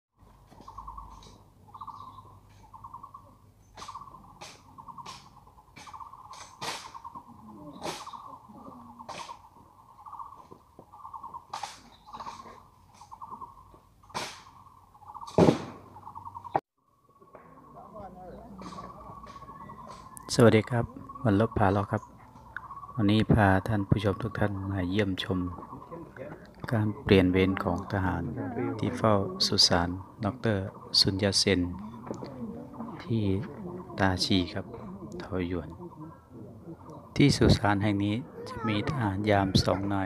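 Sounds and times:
bird trilling: 0:00.6 - 0:40.0.

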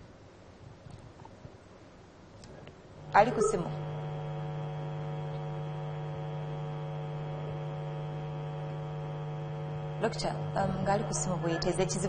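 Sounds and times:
buzzy electrical hum: 0:00.0 - 0:12.0.

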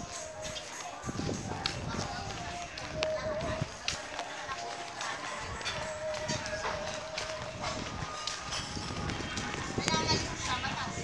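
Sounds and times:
footsteps on concrete: 0:00.0 - 0:11.0
indistinct voices: 0:00.0 - 0:11.0.

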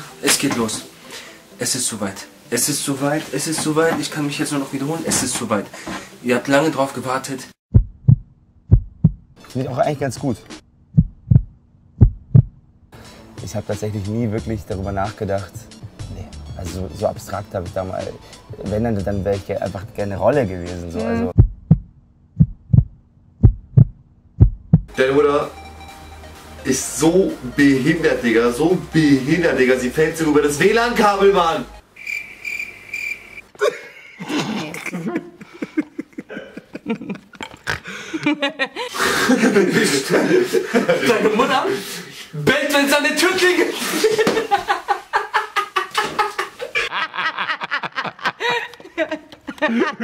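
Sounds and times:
heartbeat thumps: 0:07.7 - 0:09.4, 0:10.9 - 0:12.6, 0:21.3 - 0:24.9
man laughing heartily: 0:33.5 - 0:41.4, 0:43.7 - 0:50.0.

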